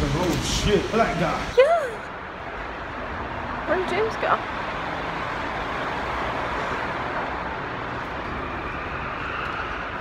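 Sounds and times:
traffic hiss: 0:00.0 - 0:02.4.

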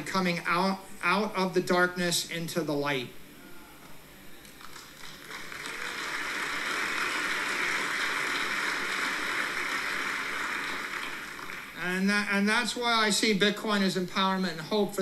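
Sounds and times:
audience applauding: 0:04.6 - 0:11.8.

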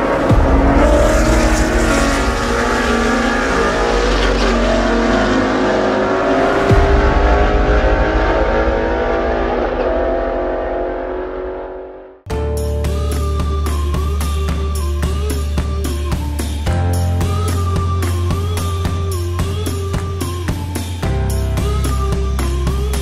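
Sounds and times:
race car engine running: 0:00.0 - 0:12.2.

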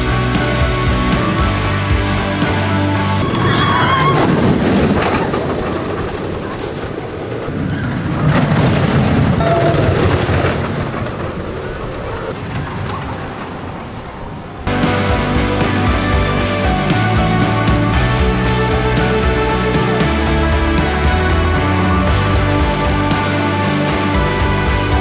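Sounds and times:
music: 0:00.0 - 0:04.1, 0:14.7 - 0:25.0
roller coaster train roaring on track: 0:00.0 - 0:25.0
roller coaster squeal: 0:03.1 - 0:14.7.

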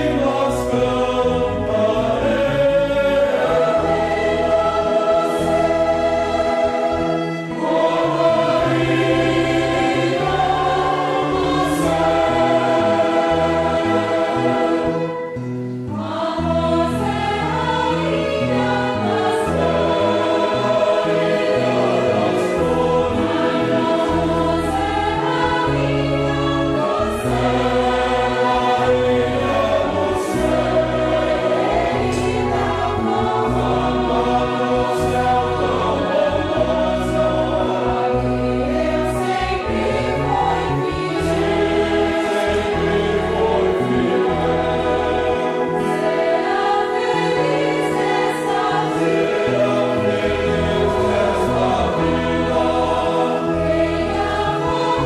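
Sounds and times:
choir singing a hymn: 0:00.0 - 0:55.0
violins: 0:00.0 - 0:55.0.

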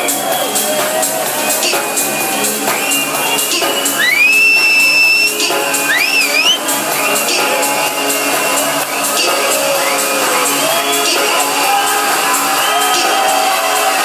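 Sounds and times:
electronic dance music: 0:00.0 - 0:14.0.

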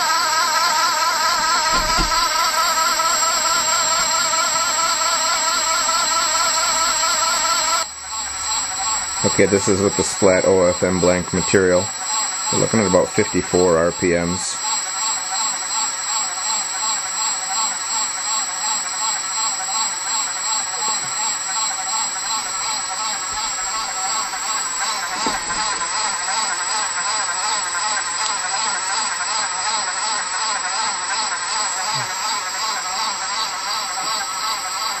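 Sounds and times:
pump whining and pulsing: 0:00.0 - 0:35.0
short knock: 0:01.7 - 0:02.2.

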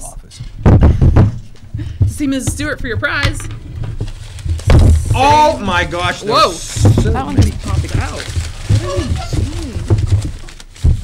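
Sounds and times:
person making low wordless sounds: 0:08.7 - 0:10.0.

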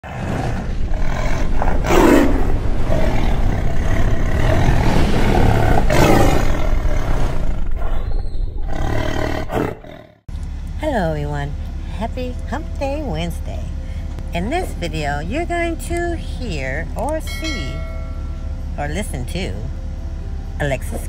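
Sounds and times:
deep noisy rumble: 0:00.0 - 0:21.0.

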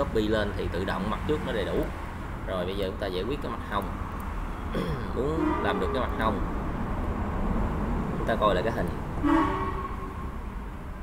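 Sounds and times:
horn steady tone: 0:05.2 - 0:06.4, 0:09.2 - 0:10.6.

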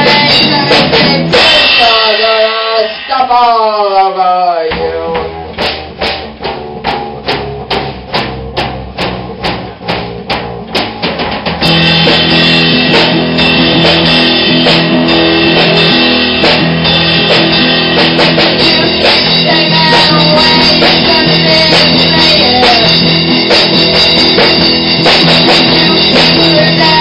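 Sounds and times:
electric guitar: 0:00.0 - 0:03.2, 0:04.7 - 0:27.0
bass guitar: 0:00.0 - 0:03.5, 0:04.7 - 0:27.0
drum kit beat: 0:00.0 - 0:27.0.

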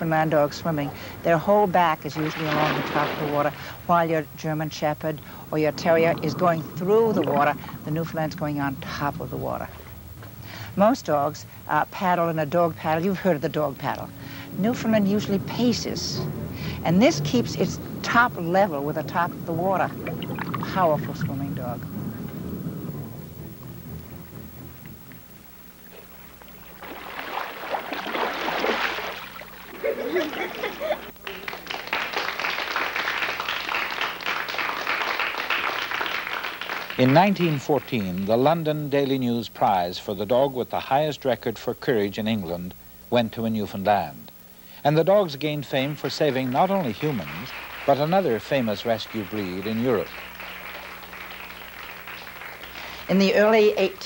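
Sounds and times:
soft applause: 0:00.0 - 0:10.8, 0:12.7 - 0:39.2, 0:45.2 - 0:54.0
low rumble: 0:00.0 - 0:27.8
low electrical hum: 0:00.0 - 0:54.0
dog splashing through water: 0:00.7 - 0:03.9, 0:05.1 - 0:10.0, 0:25.9 - 0:29.8.

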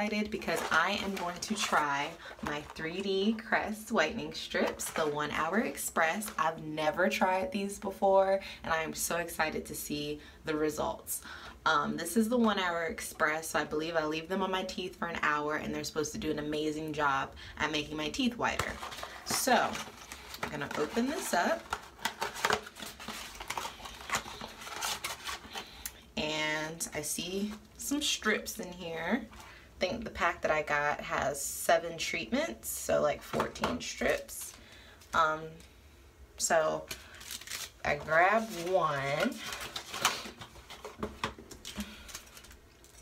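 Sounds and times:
packaging crinkling and tearing: 0:18.6 - 0:25.8, 0:36.9 - 0:43.0.

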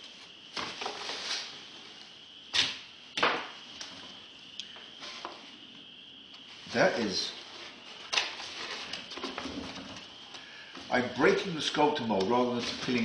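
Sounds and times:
sharp cracks of breaking material: 0:02.5 - 0:03.6.

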